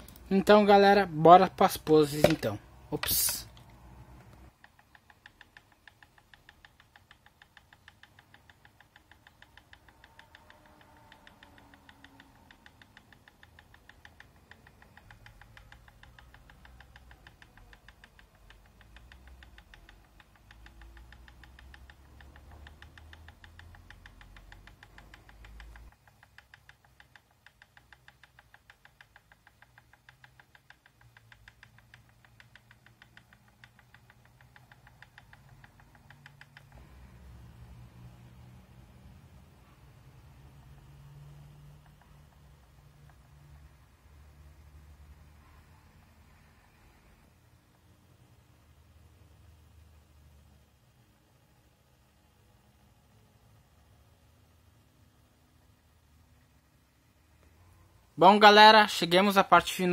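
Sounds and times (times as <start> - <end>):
rotating turntable ticking: 4.4 - 38.6.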